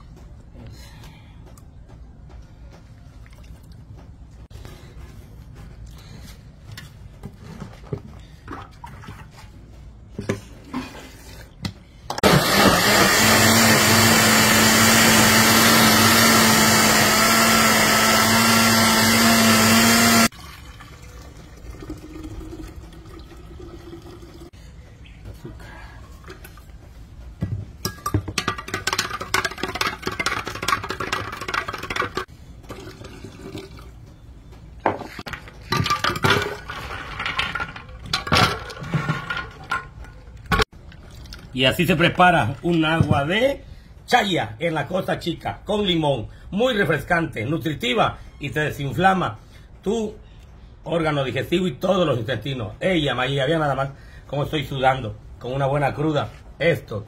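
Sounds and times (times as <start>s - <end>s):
blender running: 12.2s - 20.3s.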